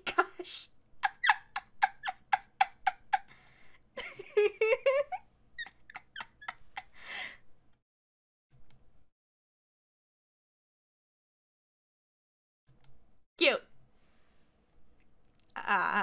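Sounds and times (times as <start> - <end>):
woman giggling: 0.0 - 3.3, 4.0 - 7.0.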